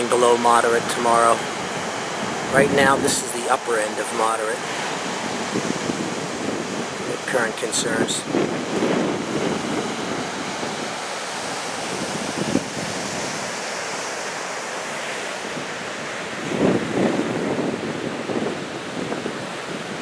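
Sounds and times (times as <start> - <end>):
wind buffeting microphone: 0.0 - 3.6, 4.5 - 14.5, 15.3 - 20.0
ocean surf washing onto beach: 0.0 - 20.0.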